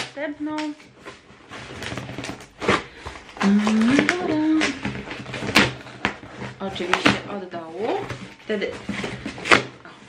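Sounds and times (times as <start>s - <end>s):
cardboard rustling and scraping: 0.6s - 10.0s.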